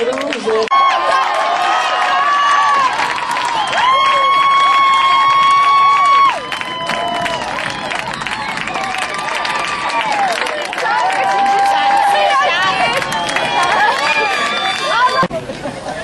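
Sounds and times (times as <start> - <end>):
crowd cheering and shouting: 0.5 - 15.4.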